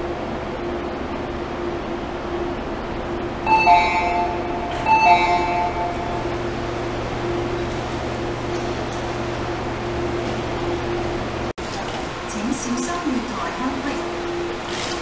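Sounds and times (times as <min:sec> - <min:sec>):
steady hum of stopped train: 0:00.0 - 0:15.0
station door chime: 0:03.4 - 0:08.5.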